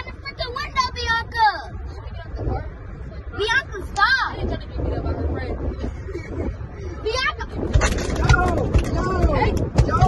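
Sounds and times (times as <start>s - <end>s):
children's voices: 0.0s - 5.8s.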